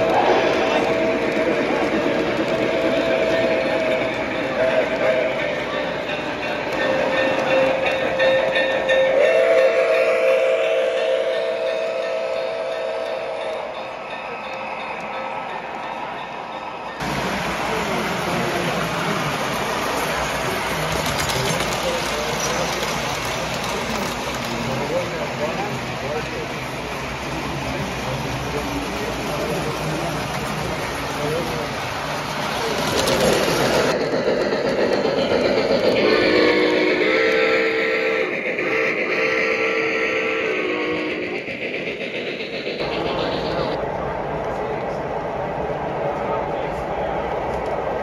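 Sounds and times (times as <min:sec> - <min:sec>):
model train wheels rumbling: 0:00.0 - 0:16.2, 0:16.9 - 0:48.0
crowd chatter: 0:00.0 - 0:48.0
steam locomotive chime whistle: 0:02.7 - 0:17.1, 0:35.3 - 0:41.4.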